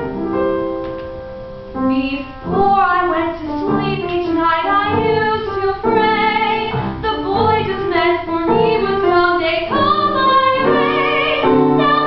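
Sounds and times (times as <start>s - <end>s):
instrumental accompaniment: 0.0s - 12.0s
woman singing with vibrato: 1.9s - 12.0s.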